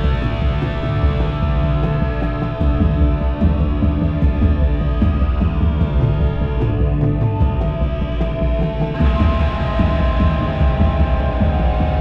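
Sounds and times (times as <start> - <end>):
low throbbing bass pulse: 0.0 - 12.0
sustained high synth drones: 0.0 - 12.0.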